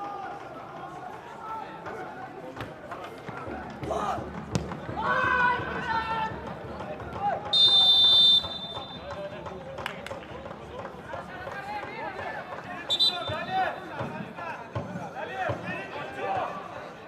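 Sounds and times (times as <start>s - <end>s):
players shouting: 3.8s - 9.2s
referee's pea whistle blasts: 7.5s - 9.1s, 12.9s - 13.6s.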